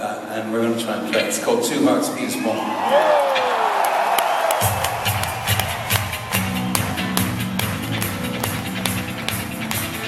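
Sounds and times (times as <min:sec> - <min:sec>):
crowd cheering: 0:02.2 - 0:10.0.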